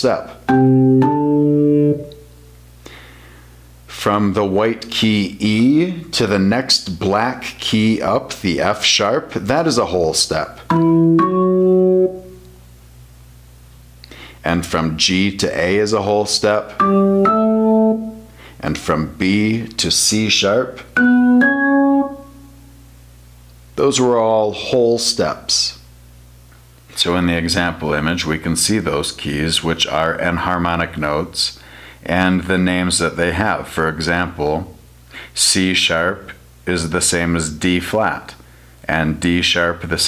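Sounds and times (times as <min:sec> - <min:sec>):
faint hum: 0:00.0 - 0:40.0
low keyboard note: 0:00.5 - 0:02.3, 0:10.7 - 0:12.5, 0:16.8 - 0:18.3, 0:21.0 - 0:22.6.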